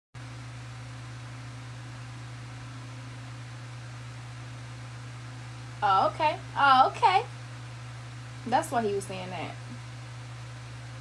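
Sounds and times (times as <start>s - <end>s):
electric fan running: 0.2s - 11.0s.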